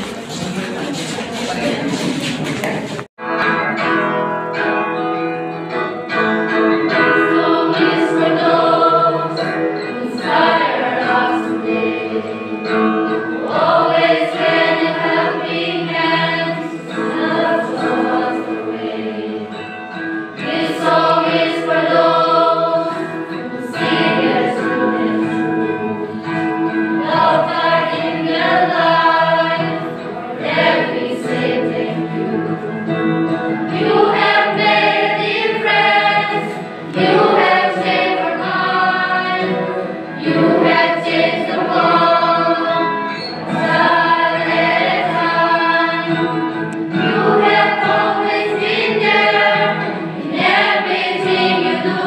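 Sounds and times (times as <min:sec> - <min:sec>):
choir singing: 0:06.5 - 0:52.0.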